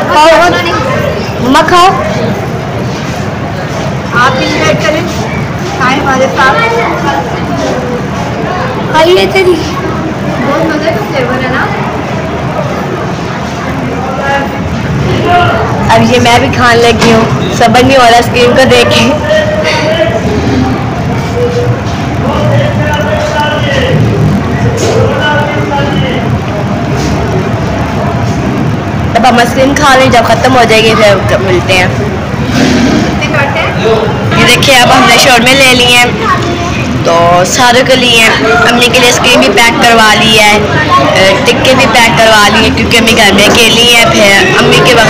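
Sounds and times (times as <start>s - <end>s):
faint voices: 0.0s - 45.0s
low rumbling background noise: 0.0s - 45.0s.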